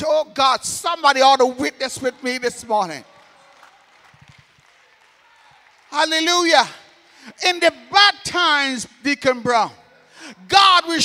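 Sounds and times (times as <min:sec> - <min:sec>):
echoing amplified voice: 0:00.0 - 0:03.5, 0:05.9 - 0:11.0.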